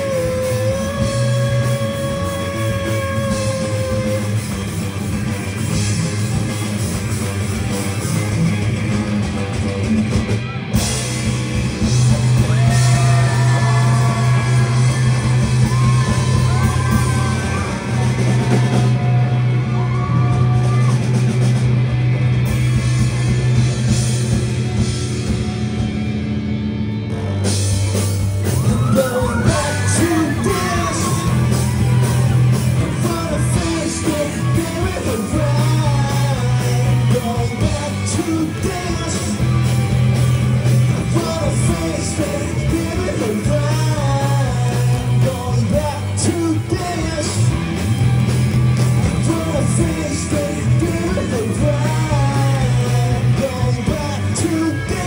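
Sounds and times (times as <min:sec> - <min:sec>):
person singing: 0:00.0 - 0:04.7, 0:28.5 - 0:39.8, 0:40.7 - 0:47.6, 0:49.0 - 0:55.0
rock band playing: 0:00.0 - 0:55.0.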